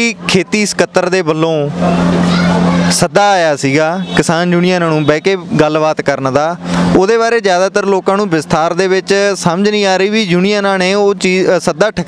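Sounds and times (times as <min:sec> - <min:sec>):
man speaking: 0:00.0 - 0:01.8, 0:02.9 - 0:12.0
motor vehicle rushing: 0:00.0 - 0:12.0.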